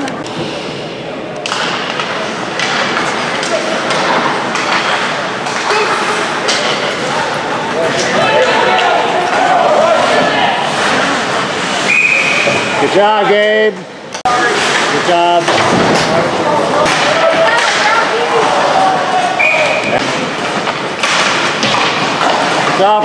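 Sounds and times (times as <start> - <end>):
players and spectators calling out: 5.5 - 13.4, 16.3 - 20.1
referee's whistle: 11.9 - 12.6, 19.4 - 19.9.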